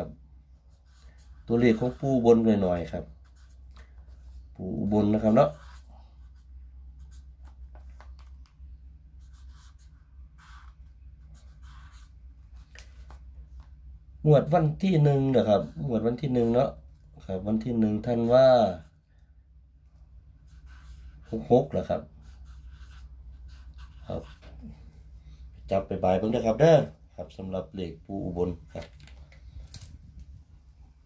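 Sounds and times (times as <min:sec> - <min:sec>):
faint low hum: 0:00.0 - 0:31.0
marker pen writing on paper: 0:00.7 - 0:02.5, 0:03.2 - 0:04.4, 0:05.1 - 0:08.3, 0:09.2 - 0:13.2, 0:20.4 - 0:21.5, 0:22.1 - 0:24.7.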